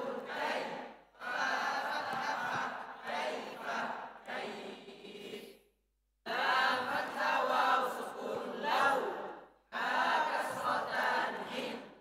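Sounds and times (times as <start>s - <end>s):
person reciting in chant-like cadence: 0.0s - 5.6s, 6.2s - 12.0s.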